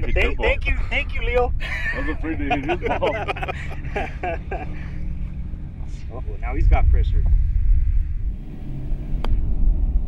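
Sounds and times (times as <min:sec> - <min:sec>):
wind on microphone: 0:05.0 - 0:10.0.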